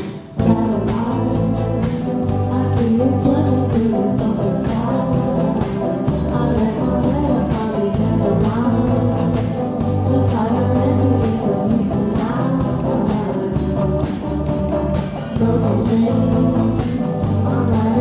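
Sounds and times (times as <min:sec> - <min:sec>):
drum kit beat: 0:00.0 - 0:18.0
electric bass: 0:00.0 - 0:18.0
strummed acoustic guitars: 0:00.0 - 0:18.0
group of voices singing: 0:00.4 - 0:18.0.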